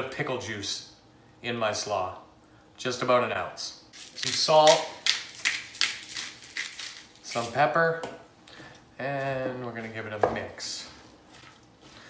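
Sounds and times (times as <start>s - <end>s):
seasoning sprinkling: 4.0s - 7.6s.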